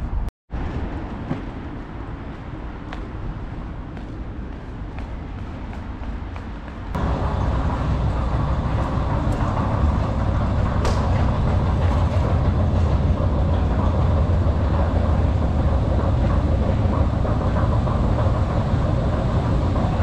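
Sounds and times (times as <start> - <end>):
escalator rumbling and rattling: 0.0 - 20.0.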